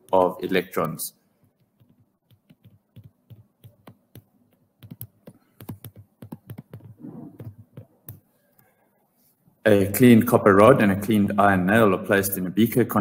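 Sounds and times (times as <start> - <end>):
stylus tapping on drawing tablet: 1.4 - 8.3.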